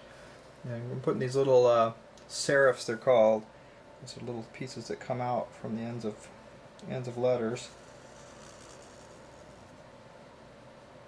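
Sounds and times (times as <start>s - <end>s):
room hiss: 0.0s - 10.5s
marker scratching on paper: 7.7s - 9.8s.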